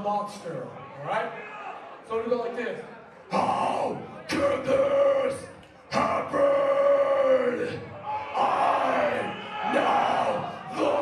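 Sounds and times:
crowd shouting back: 3.3 - 11.0.

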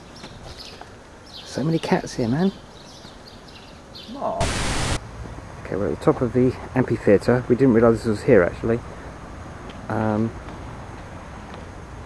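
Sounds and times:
static-like hiss burst: 4.2 - 5.0.

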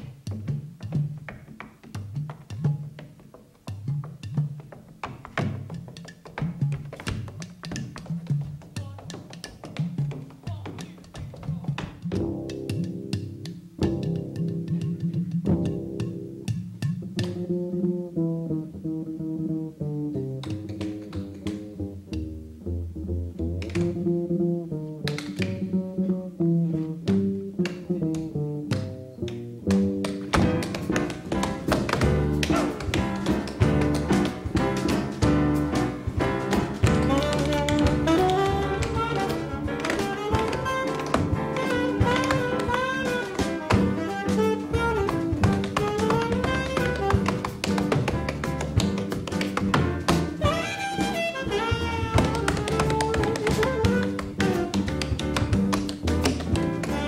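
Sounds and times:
tap shoes on wooden stage: 0.0 - 17.5, 20.3 - 22.4, 27.0 - 57.0
drums: 0.0 - 18.1, 29.7 - 57.0
live jazz bass and piano: 0.0 - 57.0
saxophone melody: 36.9 - 47.6, 49.8 - 54.8.

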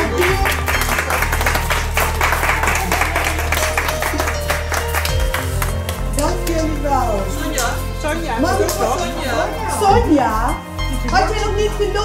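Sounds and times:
crowd clapping and applauding: 0.0 - 9.1
background music with bass line: 0.0 - 12.0.

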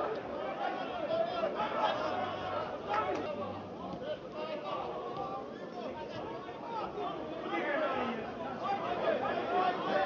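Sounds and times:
people calling and shouting: 0.0 - 10.0.

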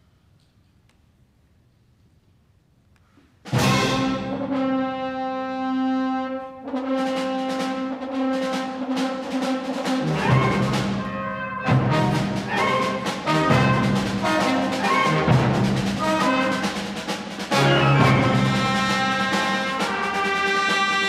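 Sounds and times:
wind ensemble playing chords: 3.5 - 21.0.

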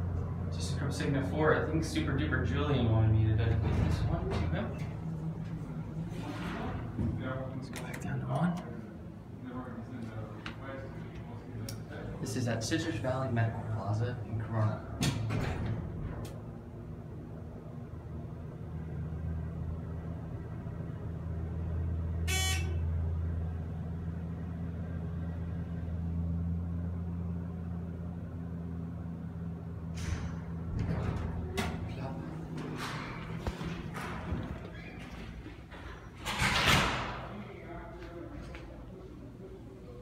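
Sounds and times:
elevator low hum: 0.0 - 40.0
sliding doors clattering: 3.4 - 5.1, 14.9 - 16.6, 29.9 - 37.4.

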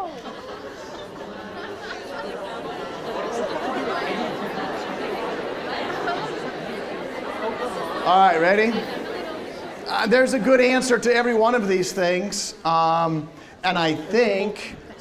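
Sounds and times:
students chattering: 0.0 - 15.0.

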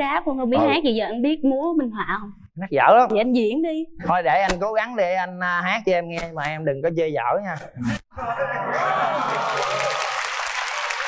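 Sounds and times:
voices: 0.0 - 3.8
audience applauding: 8.8 - 11.0.

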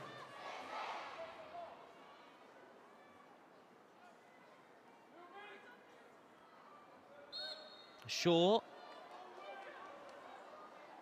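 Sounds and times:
referee's whistle blasts: 7.3 - 8.0.

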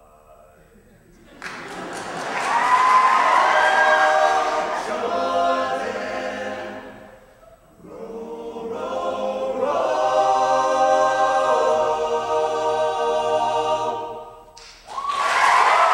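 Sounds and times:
men singing in harmony: 3.3 - 7.2, 7.8 - 14.2.

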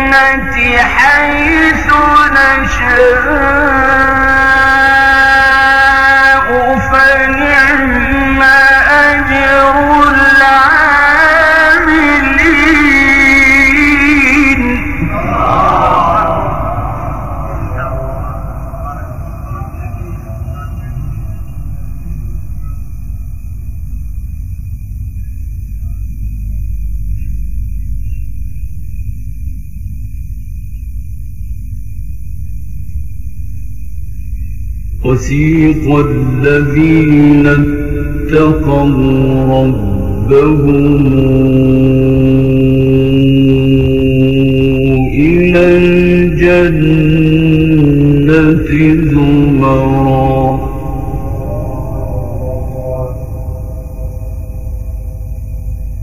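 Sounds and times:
man chanting a long note: 0.0 - 22.8, 35.0 - 55.3
low rumble and hum: 0.0 - 56.0.

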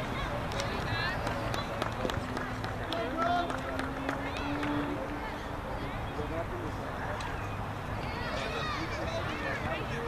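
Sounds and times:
distant shouting voices: 0.0 - 6.4.

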